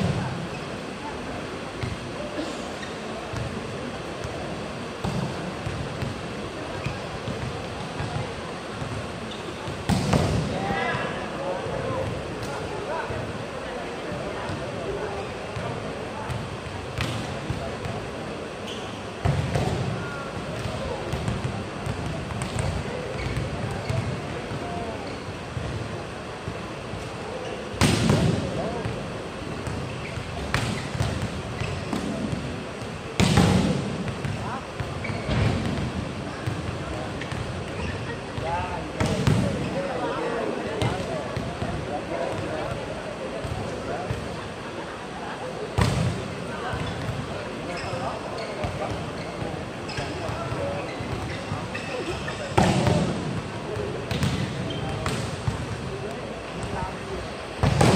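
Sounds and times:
murmur of voices: 0.0s - 57.9s
ball slamming the floor: 9.9s - 10.5s, 33.2s - 34.4s, 52.6s - 53.2s, 57.6s - 57.9s
volleyball being hit: 33.2s - 34.4s.

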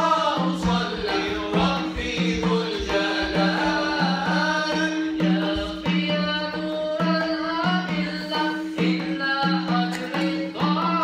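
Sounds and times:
men chanting together: 0.0s - 4.8s
frame drum beat: 0.0s - 11.0s.

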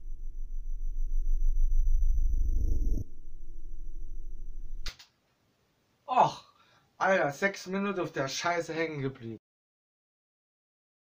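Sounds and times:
reversed slowed guitar loop: 0.0s - 4.8s.

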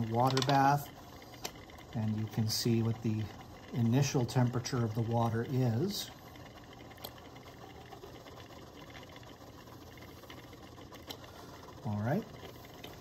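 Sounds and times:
magnetic stirrer hum: 0.0s - 13.0s.

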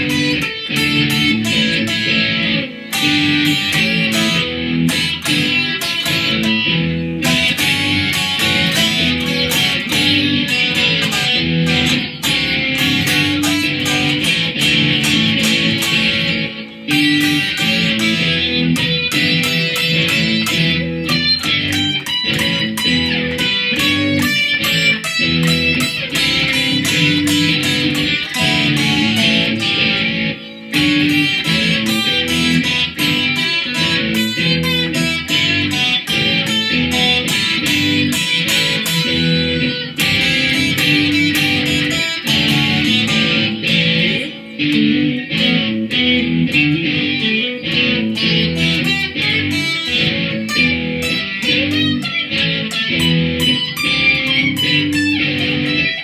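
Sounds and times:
electric guitar playing blues: 0.0s - 56.0s.

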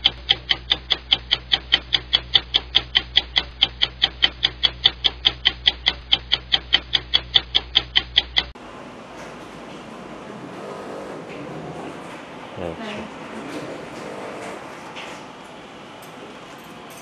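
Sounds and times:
clock ticking: 0.0s - 8.6s.

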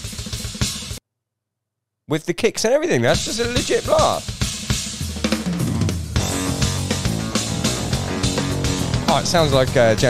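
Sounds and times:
drum kit blast beat: 0.0s - 1.0s, 3.1s - 10.0s.

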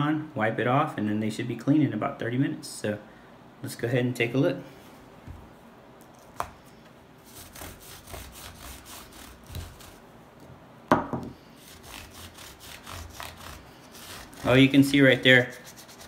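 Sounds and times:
brush scrubbing sneaker fabric: 7.3s - 10.0s, 11.6s - 16.0s.

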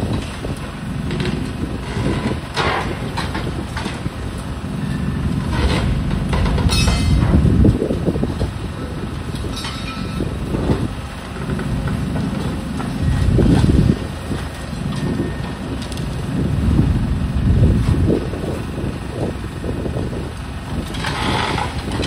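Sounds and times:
excavator running: 0.0s - 22.0s
low uneven rumble: 0.0s - 22.0s
wind buffeting microphone: 0.0s - 22.0s.

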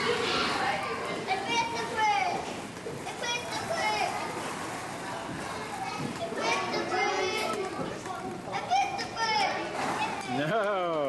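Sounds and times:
children calling and chattering: 0.0s - 10.6s
background hubbub: 0.0s - 11.0s.

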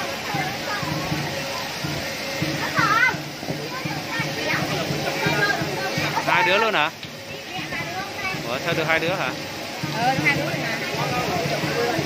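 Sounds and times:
children chattering: 0.0s - 12.0s
spraying water hiss: 0.0s - 12.0s
child shouting: 2.6s - 3.2s.

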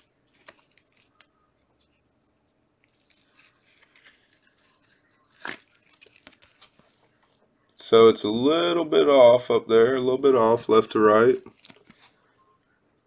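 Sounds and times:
rustling and sliding of card in sleeve: 0.0s - 7.4s, 11.4s - 12.3s.

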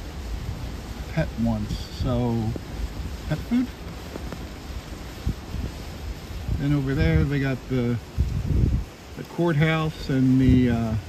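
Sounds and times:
gusty wind buffeting microphone: 0.0s - 11.0s.

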